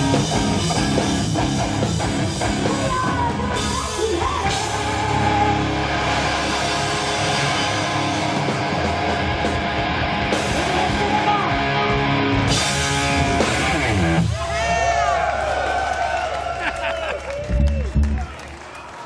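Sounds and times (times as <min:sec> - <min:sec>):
live heavy metal band playing: 0:00.0 - 0:15.2.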